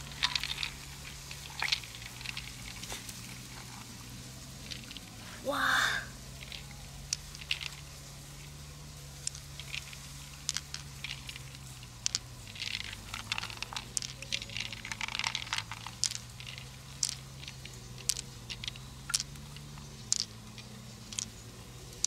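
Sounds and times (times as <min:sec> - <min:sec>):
wet crackles: 0:00.0 - 0:22.0
small clicks and taps: 0:06.4 - 0:07.9, 0:09.2 - 0:22.0.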